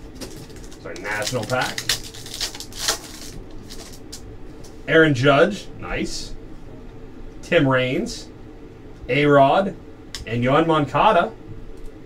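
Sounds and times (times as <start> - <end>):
foil wrapper crinkling: 0.0 - 4.2.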